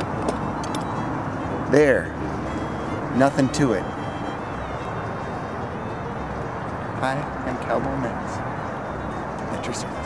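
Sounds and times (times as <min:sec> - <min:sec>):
even outdoor hiss: 0:00.0 - 0:10.0.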